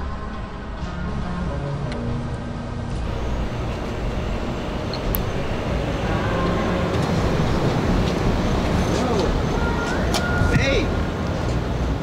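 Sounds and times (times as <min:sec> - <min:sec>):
distant traffic rumble: 0:00.0 - 0:12.0.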